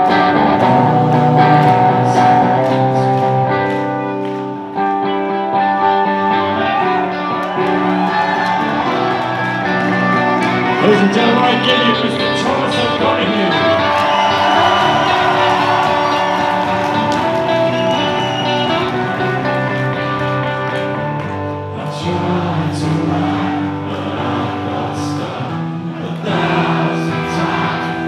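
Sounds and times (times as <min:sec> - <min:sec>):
person singing: 0:00.0 - 0:07.3, 0:08.5 - 0:21.0, 0:21.6 - 0:28.0
electric guitar chords: 0:00.0 - 0:28.0.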